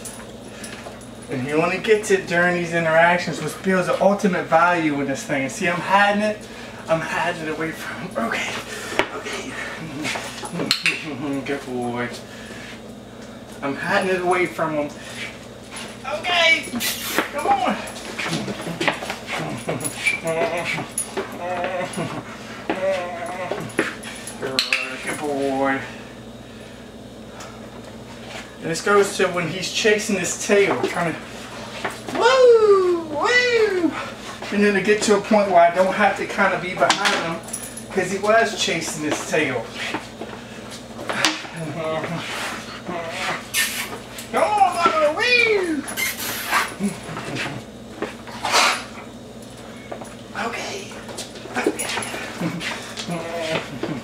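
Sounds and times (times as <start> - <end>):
dog whining: 16.6 - 23.9, 41.4 - 47.6, 51.6 - 54.0.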